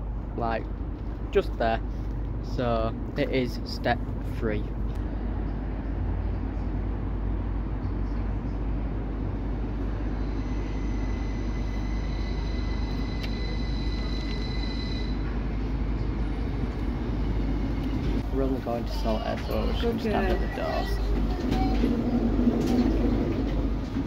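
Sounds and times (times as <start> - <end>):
train rumbling: 0.0 - 24.0
high-pitched train squeal: 9.8 - 15.7, 18.9 - 23.2.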